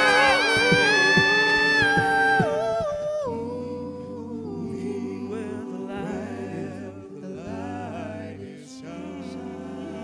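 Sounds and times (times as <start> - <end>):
male vocal group singing chord: 0.0 - 10.0.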